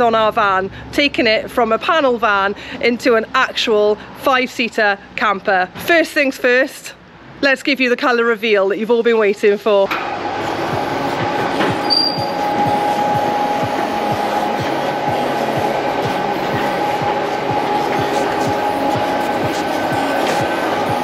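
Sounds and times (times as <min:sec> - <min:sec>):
motor hum: 0:10.0 - 0:21.0.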